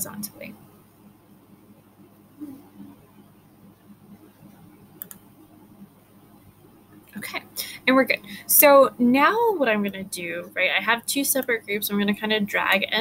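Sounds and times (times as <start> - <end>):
computer mouse click: 5.0 - 5.2.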